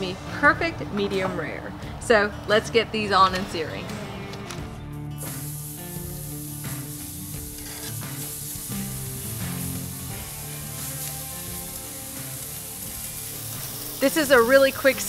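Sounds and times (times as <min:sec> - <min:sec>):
steak sizzling on a grill: 0:05.1 - 0:15.0.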